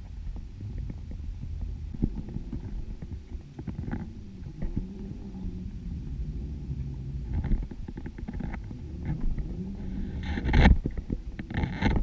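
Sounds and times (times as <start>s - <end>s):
muffled underwater rumble: 0.0s - 12.0s.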